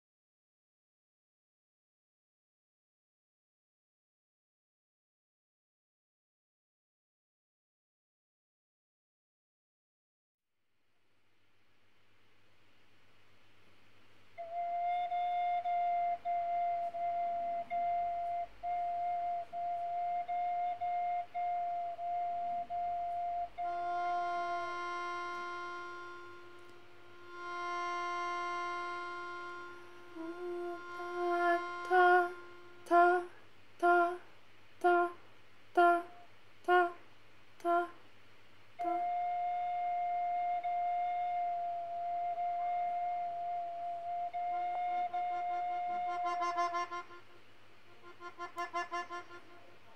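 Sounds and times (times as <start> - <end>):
slide whistle tone: 14.4 - 33.2, 38.8 - 47.2
reedy melodica note: 23.6 - 33.3, 45.5 - 49.9.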